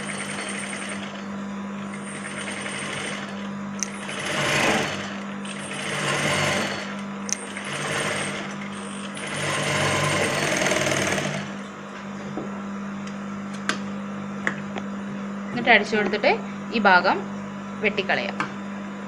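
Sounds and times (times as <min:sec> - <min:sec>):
sewing machine motor humming: 0:00.0 - 0:01.2, 0:01.8 - 0:11.7
sewing machine stitching: 0:00.0 - 0:01.2, 0:01.9 - 0:11.6.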